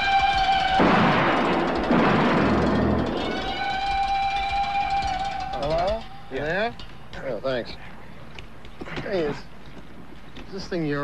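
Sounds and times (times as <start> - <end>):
shotgun blast: 0.8 - 3.2.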